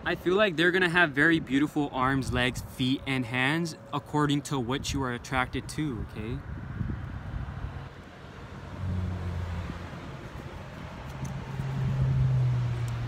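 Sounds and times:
outdoor background noise: 0.0 - 13.0
low engine hum: 6.1 - 13.0.

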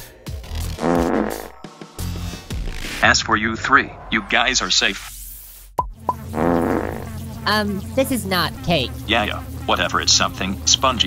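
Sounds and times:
buzzy sound effect: 6.2 - 8.9.

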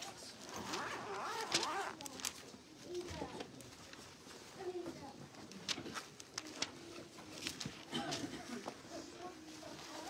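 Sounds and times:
quiet indistinct speech: 0.0 - 10.0.

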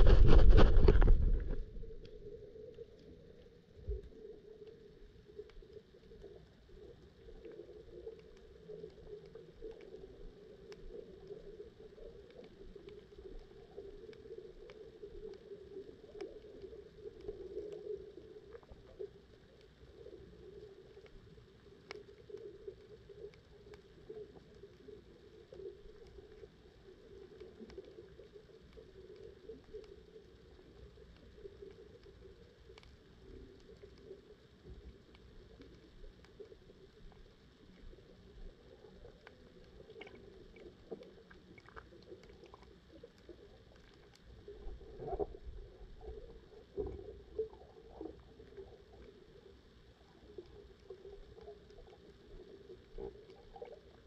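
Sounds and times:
underwater low hum: 0.0 - 54.0
faint clicks: 0.1 - 54.0.

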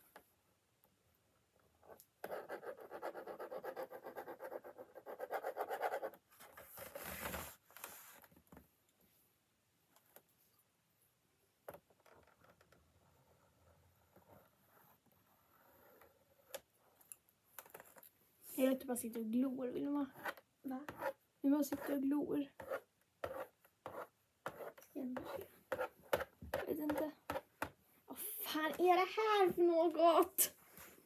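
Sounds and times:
marker scribbling on board: 2.2 - 6.2, 20.1 - 22.0, 22.6 - 27.7.

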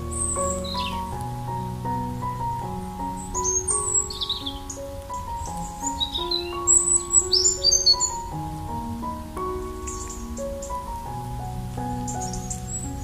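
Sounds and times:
small birds chirping: 0.0 - 13.0
soft piano music: 0.0 - 13.0.

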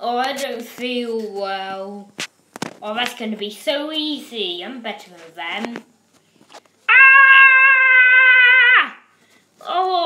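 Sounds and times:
child screaming: 6.9 - 9.1.

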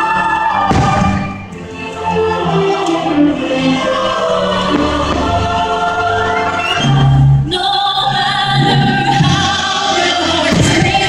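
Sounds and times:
choir singing held notes: 0.0 - 11.0
orchestral music: 0.0 - 11.0.

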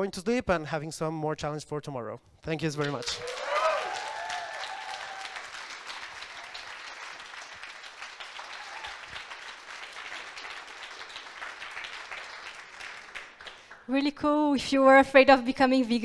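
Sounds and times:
audience clapping: 2.8 - 14.1.

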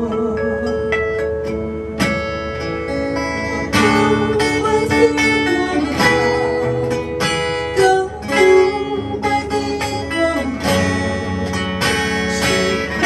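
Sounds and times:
acoustic guitar strumming chords: 0.0 - 13.0
held wavering melody line: 0.0 - 13.0.

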